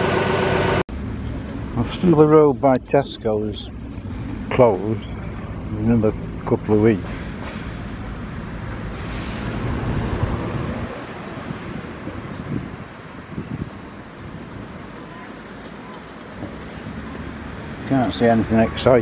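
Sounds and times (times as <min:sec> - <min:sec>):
steady street hum: 0:00.0 - 0:19.0
broad rushing sound: 0:06.9 - 0:15.1.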